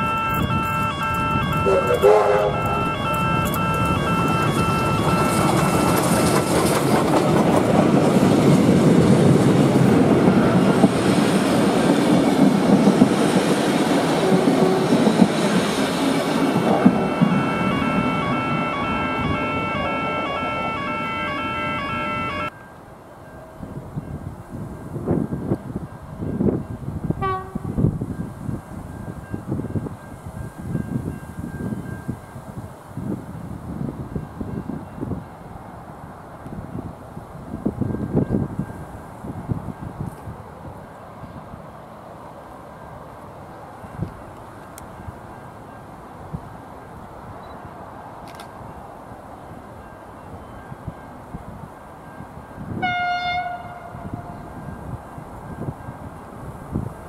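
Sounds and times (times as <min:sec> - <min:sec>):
wind gusts on microphone: 0:00.0 - 0:22.5, 0:23.4 - 0:57.0
steam locomotive passing: 0:00.0 - 0:57.0.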